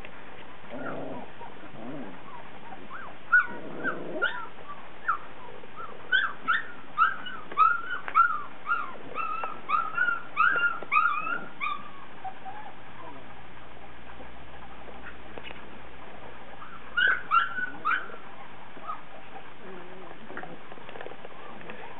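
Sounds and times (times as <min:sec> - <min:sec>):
puppies whimpering: 0:00.7 - 0:21.9.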